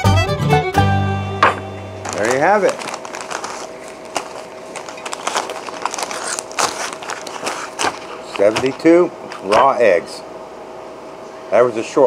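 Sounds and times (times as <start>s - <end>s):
foil bags crinkling: 1.5s - 9.8s.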